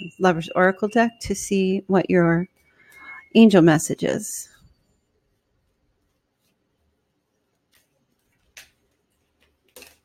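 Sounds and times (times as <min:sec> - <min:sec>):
cards rustling and shuffling: 0:07.7 - 0:10.0.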